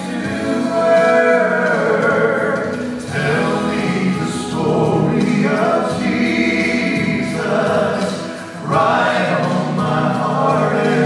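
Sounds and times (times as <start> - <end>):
male trio singing in harmony: 0.0 - 11.0.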